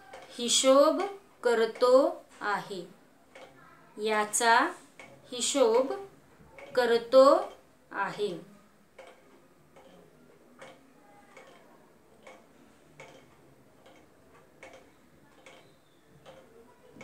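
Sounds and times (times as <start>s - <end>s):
faint regular ticking: 0.0s - 17.0s.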